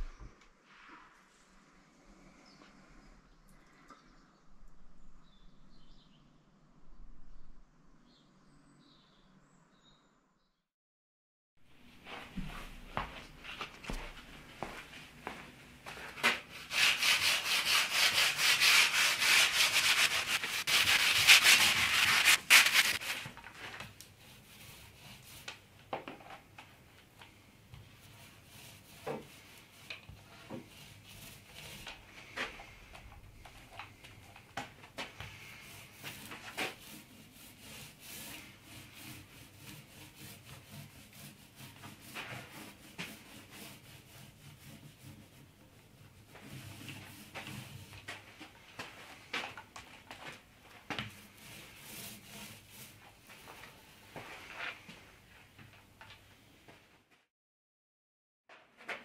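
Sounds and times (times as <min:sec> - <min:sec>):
hand sanding wood: 0:12.4 - 0:23.4, 0:24.1 - 0:25.7, 0:27.7 - 0:54.9.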